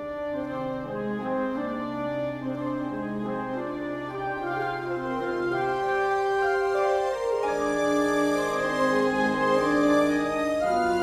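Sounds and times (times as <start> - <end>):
french horns: 0.0 - 11.0
strings and woodwinds: 0.0 - 11.0.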